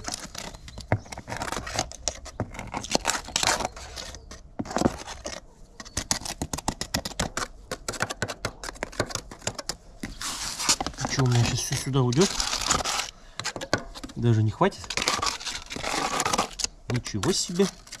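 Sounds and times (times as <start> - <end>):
putty knife scraping: 0.0 - 18.0.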